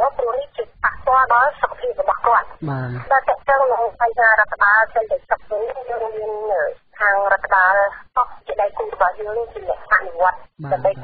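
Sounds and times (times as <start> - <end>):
narrator reading: 0.0 - 11.0.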